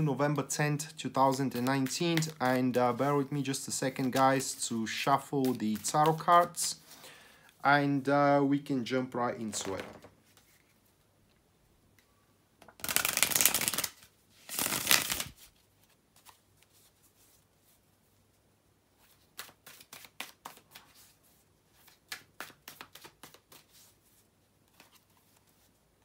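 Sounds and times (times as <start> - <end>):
cards riffle shuffling: 1.2 - 7.0, 12.8 - 16.9, 19.0 - 21.2, 21.8 - 25.7
cards clicking: 12.8 - 14.0.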